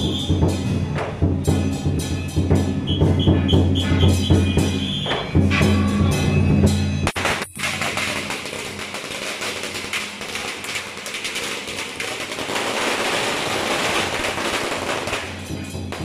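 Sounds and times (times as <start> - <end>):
firecrackers crackling: 7.0 - 16.0.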